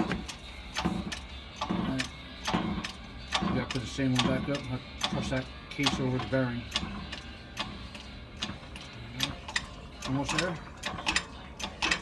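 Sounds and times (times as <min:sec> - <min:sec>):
sharp metallic clicks: 0:00.0 - 0:12.0.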